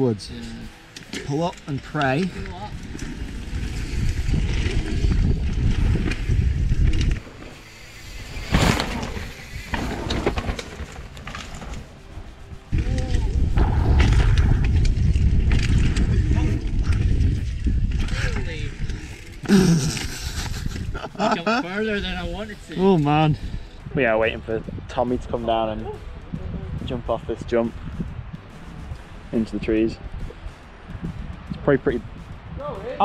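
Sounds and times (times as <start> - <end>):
bike tyre rumble on trail: 0.7 - 21.1, 22.2 - 33.0
wind rushing: 2.3 - 33.0.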